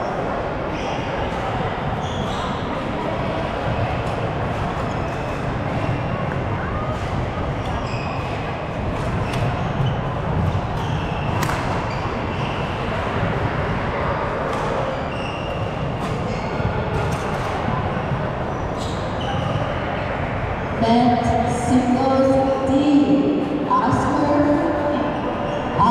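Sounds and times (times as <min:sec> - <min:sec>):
murmur of voices in a hall: 0:00.0 - 0:25.9
shoes squeaking on court floor: 0:02.0 - 0:02.8, 0:04.9 - 0:06.4, 0:07.6 - 0:08.5, 0:09.1 - 0:12.8, 0:14.6 - 0:19.9
racket hitting shuttlecock: 0:10.4 - 0:11.8.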